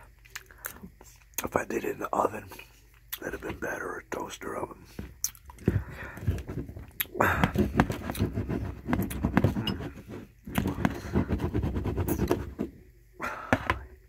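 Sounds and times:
close chewing of food: 5.1 - 6.2.

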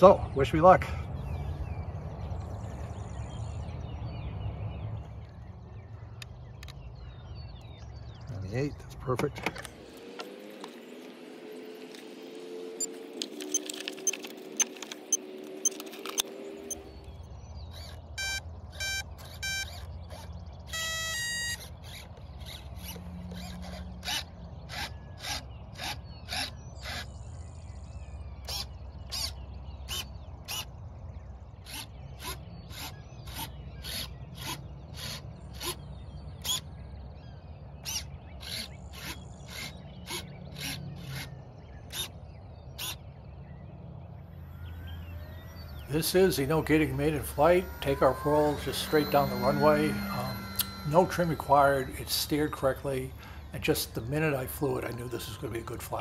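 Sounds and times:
speed controller beeping: 12.8 - 16.9, 18.2 - 19.9, 44.8 - 56.0
low steady hum: 26.6 - 56.0.

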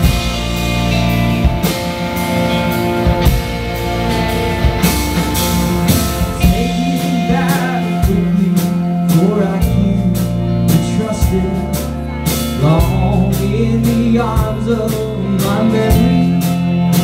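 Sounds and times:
drum hits: 0.0 - 8.5
rock band playing live: 0.0 - 17.0.

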